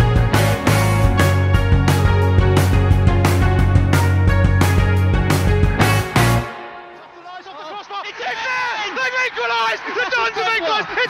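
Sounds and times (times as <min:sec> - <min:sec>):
excited commentator voice: 0:06.9 - 0:11.0.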